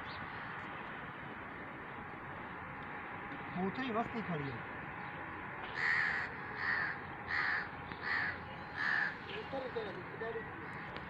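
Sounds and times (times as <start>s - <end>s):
bird harsh calls: 5.7s - 9.5s.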